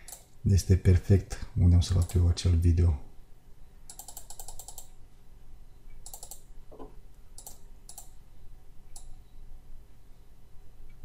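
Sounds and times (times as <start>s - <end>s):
mouse scroll wheel ticking: 3.9s - 5.0s, 6.0s - 6.4s, 7.4s - 8.1s.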